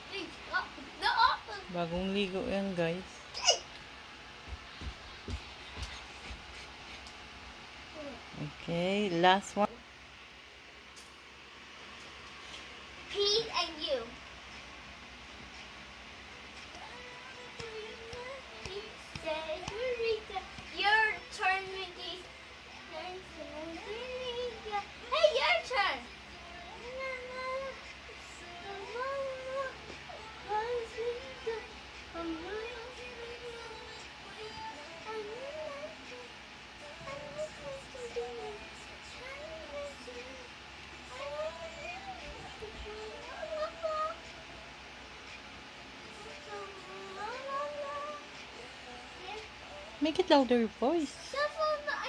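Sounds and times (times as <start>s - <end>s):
boy singing: 16.7s - 22.3s, 22.9s - 40.5s, 41.1s - 44.4s, 46.2s - 50.0s, 51.2s - 52.0s.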